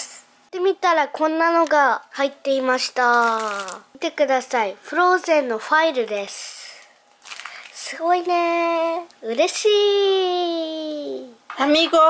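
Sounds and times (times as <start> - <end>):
woman talking: 11.5 - 12.0.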